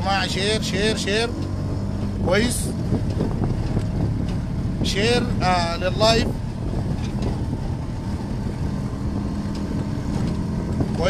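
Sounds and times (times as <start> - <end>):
small engine droning: 0.0 - 11.0.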